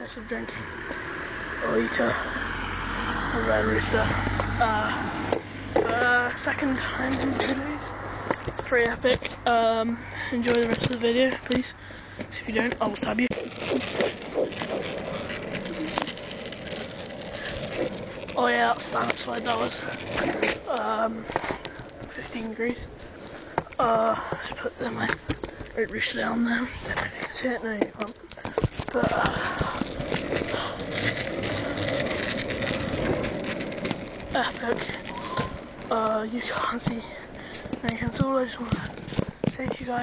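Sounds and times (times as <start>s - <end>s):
skate wheels rolling on pavement: 0.0s - 40.0s.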